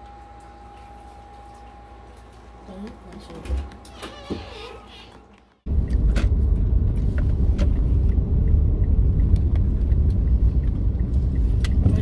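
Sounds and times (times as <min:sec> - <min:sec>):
car road rumble inside cabin: 0:05.7 - 0:12.0.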